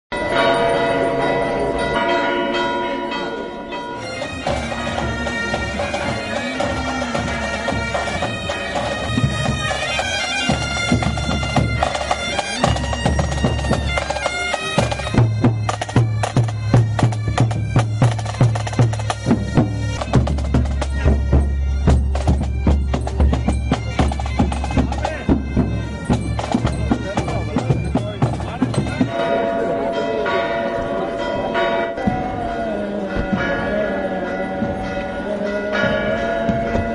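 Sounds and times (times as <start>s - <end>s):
church bells ringing: 0.1s - 36.9s
bagpipes playing: 3.9s - 36.9s
snare and bass drums: 4.5s - 29.1s.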